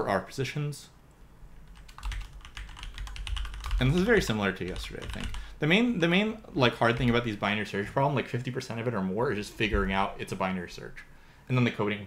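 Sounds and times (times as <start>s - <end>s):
typing on computer keyboard: 1.7s - 5.5s, 6.9s - 7.3s.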